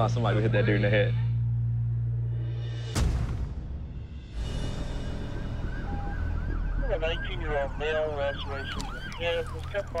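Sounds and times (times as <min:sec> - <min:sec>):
emergency vehicle siren yelping: 0:05.2 - 0:10.0.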